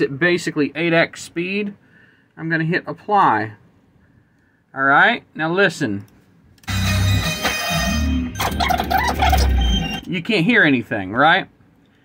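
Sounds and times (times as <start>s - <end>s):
dense music with high tones: 6.6s - 10.1s.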